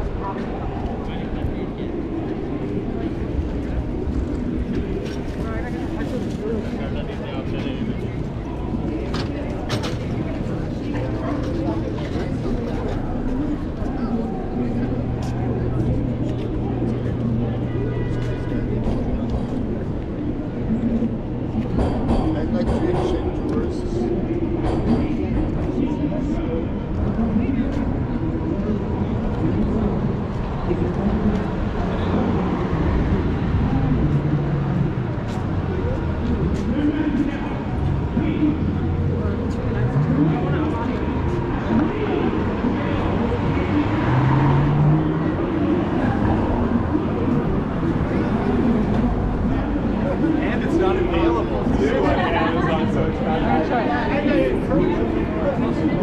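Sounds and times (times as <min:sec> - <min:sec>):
voices of passers-by: 0:00.0 - 0:56.0
traffic passing: 0:26.7 - 0:56.0.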